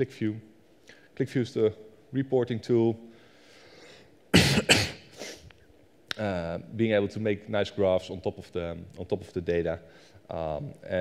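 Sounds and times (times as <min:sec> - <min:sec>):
man coughing: 0:04.3 - 0:05.2.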